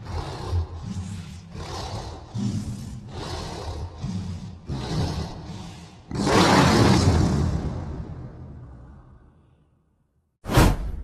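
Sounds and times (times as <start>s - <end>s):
heavy monster breath: 0.0s - 6.4s.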